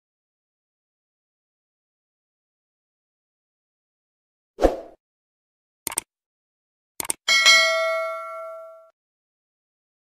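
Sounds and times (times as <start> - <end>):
mouse clicks: 5.9 - 6.1, 7.0 - 7.2
notification bell ding: 7.3 - 8.9.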